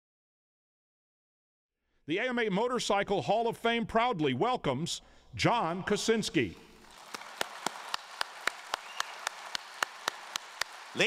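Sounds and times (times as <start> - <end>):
audience applauding: 6.8 - 11.0
nearby hand claps: 6.9 - 11.0.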